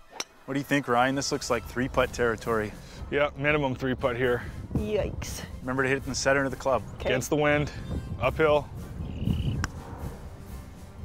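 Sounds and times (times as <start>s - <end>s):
faint background music: 0.0s - 11.0s
low wind rumble: 0.5s - 11.0s.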